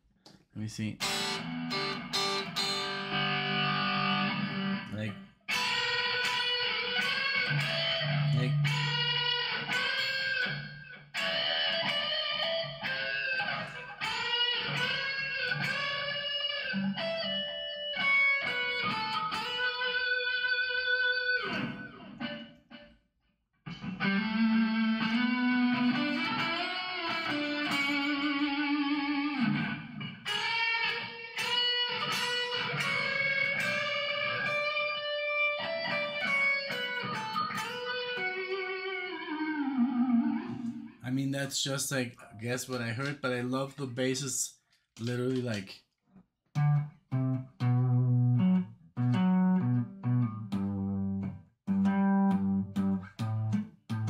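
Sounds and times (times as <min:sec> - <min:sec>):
electric guitar lead line: 0:01.0 - 0:22.8, 0:23.7 - 0:41.0, 0:46.6 - 0:54.0.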